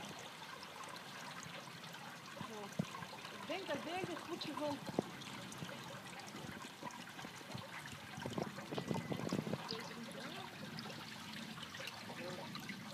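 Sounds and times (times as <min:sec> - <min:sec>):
pond water lapping and splashing: 0:00.0 - 0:12.9.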